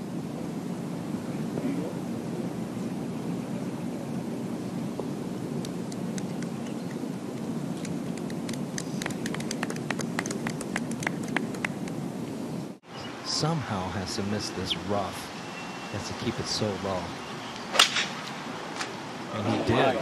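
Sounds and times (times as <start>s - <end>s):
low background noise: 0.0s - 20.0s
scattered hand clapping: 7.8s - 12.0s.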